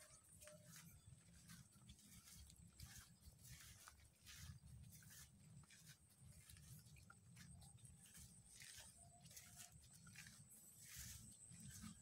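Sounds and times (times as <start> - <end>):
soft irregular rustles: 0.0 - 12.0.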